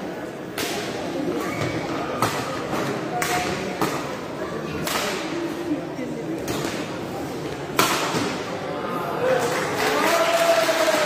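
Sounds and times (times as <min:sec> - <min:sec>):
spectator chatter: 0:00.0 - 0:11.0.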